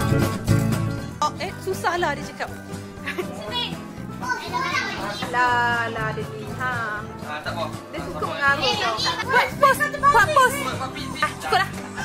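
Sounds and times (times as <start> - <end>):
background music: 0.0 - 12.0
children's voices: 3.5 - 5.2.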